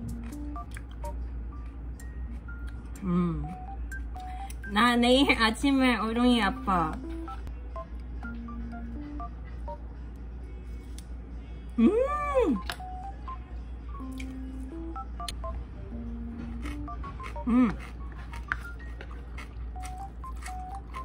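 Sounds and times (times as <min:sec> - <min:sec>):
electronic tone melody: 0:02.0 - 0:04.8
woman humming: 0:03.0 - 0:04.3, 0:11.6 - 0:12.9, 0:17.4 - 0:17.9.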